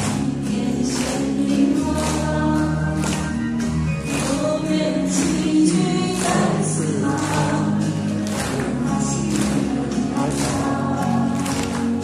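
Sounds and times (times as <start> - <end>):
hands clapping along: 0.0 - 12.0
pop song over loudspeakers: 0.0 - 12.0.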